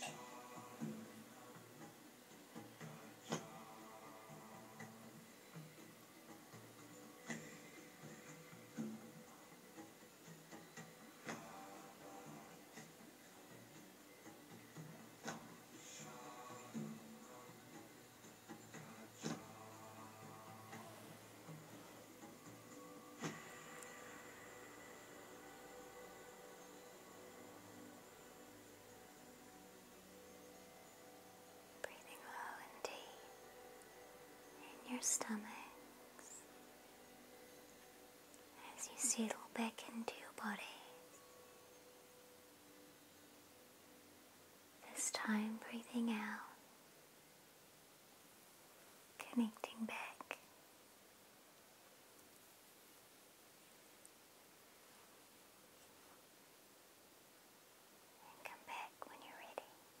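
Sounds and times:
person whispering: 0:00.0 - 0:01.6, 0:18.8 - 0:22.1, 0:31.8 - 0:33.4, 0:34.6 - 0:36.5, 0:38.6 - 0:41.3, 0:44.8 - 0:46.6, 0:49.2 - 0:50.5, 0:58.2 - 0:59.9
soft whisper: 0:00.0 - 0:09.6, 0:11.1 - 0:14.1, 0:15.1 - 0:36.7, 0:38.4 - 0:41.8, 0:44.8 - 0:46.7, 0:49.1 - 0:50.6, 0:58.1 - 1:00.0
faint steady hum: 0:00.0 - 1:00.0.

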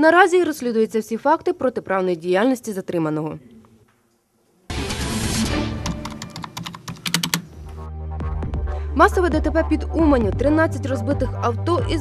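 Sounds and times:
low music: 0:04.7 - 0:06.7, 0:07.4 - 0:12.0
fast typing on keyboard: 0:05.8 - 0:07.5.

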